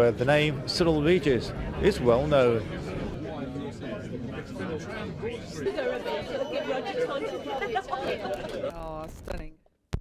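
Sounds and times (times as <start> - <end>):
indistinct chatter: 0.0 - 9.2.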